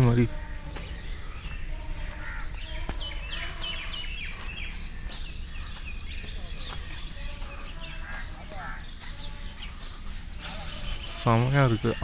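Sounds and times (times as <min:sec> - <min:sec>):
birds chirping: 0:00.0 - 0:12.0
low outdoor rumble: 0:00.0 - 0:12.0.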